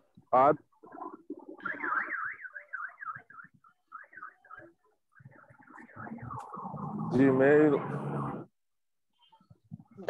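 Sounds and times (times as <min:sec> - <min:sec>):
car alarm warbling: 0:00.7 - 0:08.6.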